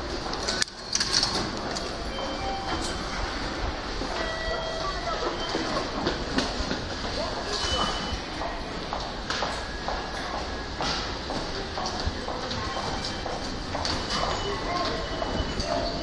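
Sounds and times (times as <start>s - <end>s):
murmur of passengers: 0.0s - 16.0s
ticket gate beeps: 0.8s - 3.5s, 4.1s - 6.3s, 7.5s - 8.4s, 12.5s - 16.0s
footsteps: 5.2s - 16.0s.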